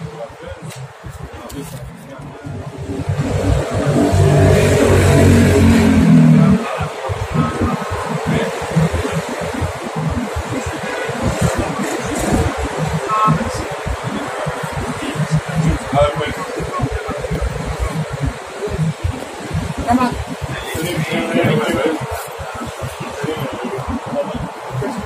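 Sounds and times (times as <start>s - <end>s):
low choppy rumble: 0.1s - 25.0s.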